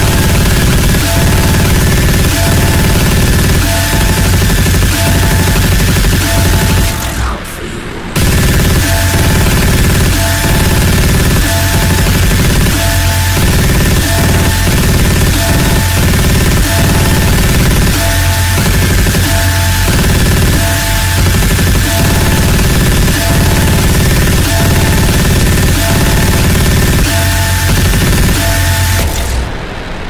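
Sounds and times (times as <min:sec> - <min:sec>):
heavy steady bass: 0:00.0 - 0:29.7
noisy synth layers: 0:00.0 - 0:30.0
sped-up electronic dance music: 0:08.2 - 0:29.0.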